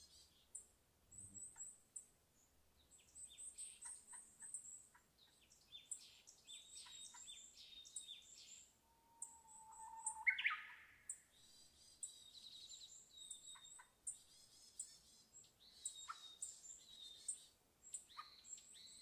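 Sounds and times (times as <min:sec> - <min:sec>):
wild birds chirping: 0:00.0 - 0:19.0
bird whistle rising in pitch: 0:09.1 - 0:10.7.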